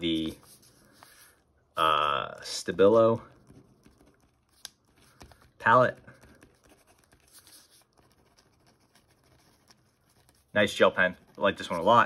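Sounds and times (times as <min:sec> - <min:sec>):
pen scratching on paper: 0:00.0 - 0:01.4, 0:03.2 - 0:12.0.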